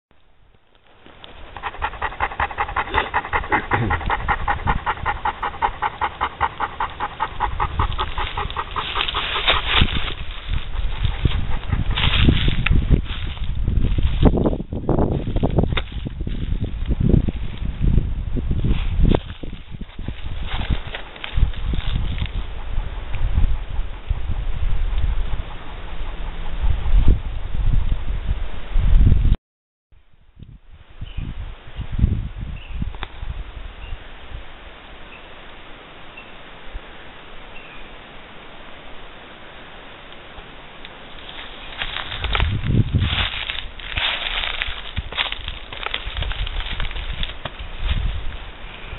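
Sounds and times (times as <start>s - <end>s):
low rumbling noise: 0.2s - 15.5s
rustling: 0.7s - 14.4s, 18.7s - 22.6s, 41.0s - 48.8s
dog panting: 1.3s - 12.9s, 21.6s - 27.4s.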